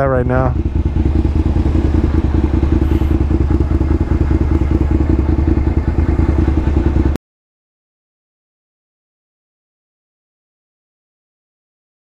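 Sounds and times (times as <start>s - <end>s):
motorcycle engine idling: 0.0s - 7.2s.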